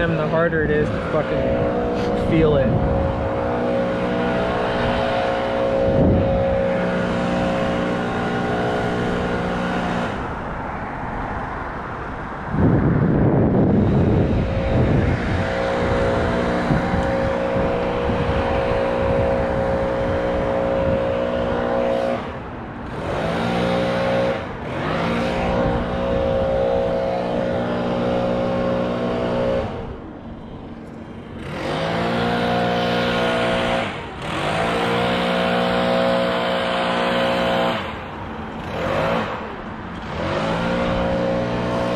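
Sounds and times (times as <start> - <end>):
small gasoline engine revving: 0.0 - 10.4, 13.4 - 30.0, 31.2 - 41.9.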